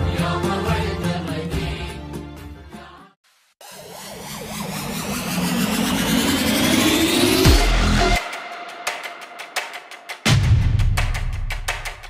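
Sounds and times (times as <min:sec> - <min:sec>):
car engine revving: 0:03.8 - 0:08.2.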